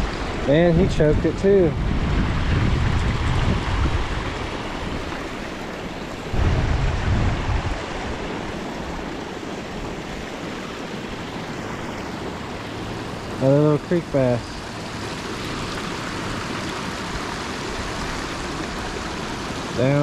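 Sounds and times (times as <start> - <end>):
wind buffeting microphone: 0.0 - 10.6
creek water rushing over rocks: 0.0 - 20.0.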